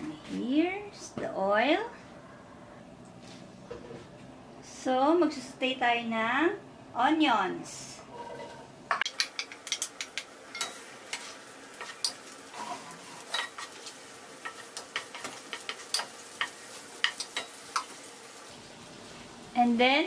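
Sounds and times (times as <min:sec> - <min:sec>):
wooden spatula scraping a pan: 0:08.1 - 0:08.7, 0:11.1 - 0:14.0
onions sizzling in hot oil: 0:09.1 - 0:20.0.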